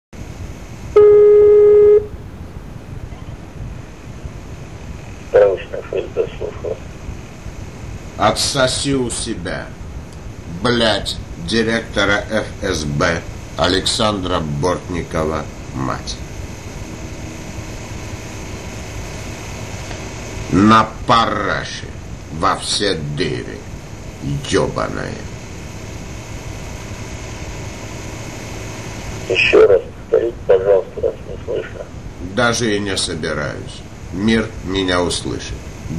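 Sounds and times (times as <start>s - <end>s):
telephone line hiss: 0.2s - 2.2s, 23.2s - 32.0s
faint low hum: 0.2s - 35.9s
loud electronic beep: 1.0s - 2.1s
voice on phone line: 5.3s - 6.8s, 29.2s - 32.6s.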